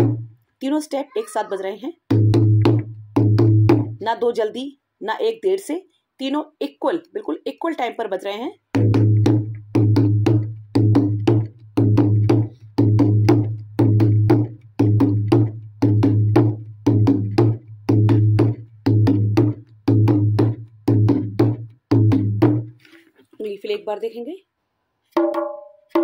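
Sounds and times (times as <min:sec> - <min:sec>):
dholak drum rhythm: 0:00.0 - 0:00.4, 0:02.1 - 0:04.3, 0:08.7 - 0:22.8, 0:25.1 - 0:26.0.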